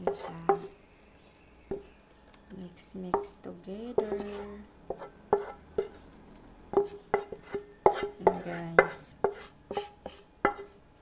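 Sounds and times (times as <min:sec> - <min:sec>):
spatula knocking on metal pan: 0:03.1 - 0:05.9, 0:06.7 - 0:09.8.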